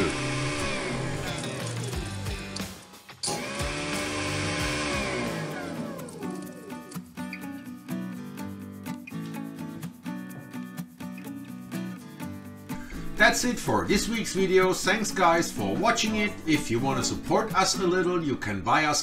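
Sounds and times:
garbage disposer motor hum: 0.0s - 7.0s
background music: 0.0s - 19.0s.

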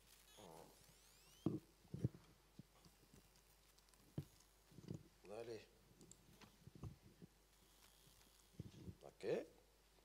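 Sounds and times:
faint clicks: 6.0s - 9.0s.

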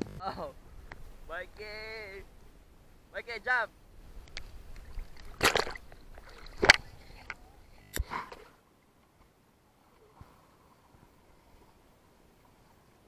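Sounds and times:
water splashing in pool: 4.8s - 7.4s.

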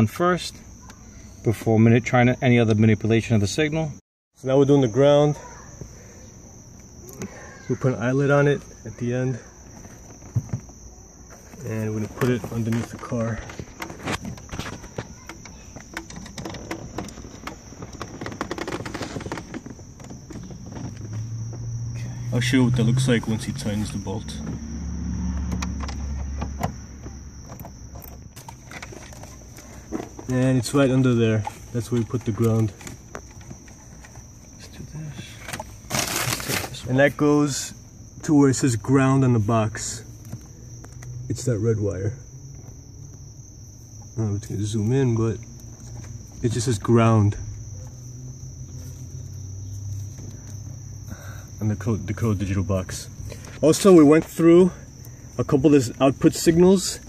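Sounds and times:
wiring clicking and rustling: 11.5s - 21.3s, 25.4s - 34.6s.

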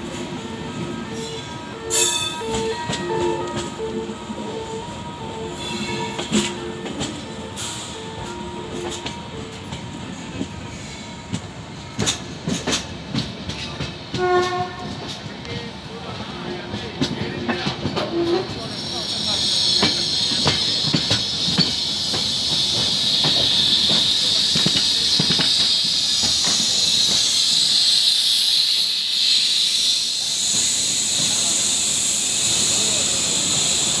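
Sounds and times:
brake squeal and hiss: 5.5s - 6.6s, 18.2s - 34.0s
train wheels clacking over rail joints: 5.7s - 7.4s, 11.3s - 15.7s, 16.6s - 28.2s
short train horn tones: 14.1s - 15.1s.

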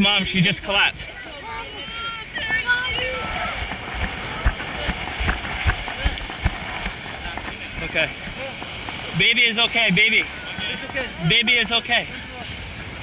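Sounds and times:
voices calling out: 0.0s - 13.0s
wind: 0.0s - 13.0s.

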